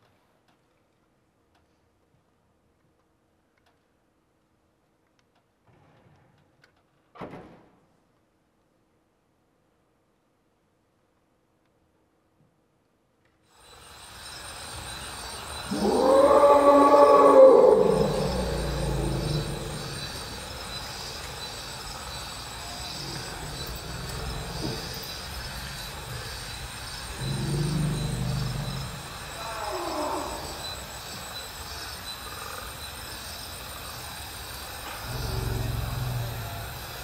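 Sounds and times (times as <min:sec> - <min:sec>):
electric zither low roaring tone: 0:14.7 - 0:31.0
low rumble: 0:18.0 - 0:29.4.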